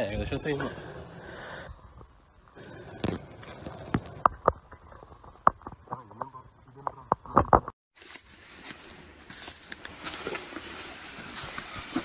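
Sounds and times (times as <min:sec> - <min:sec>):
rustle of handling: 0:08.0 - 0:12.0.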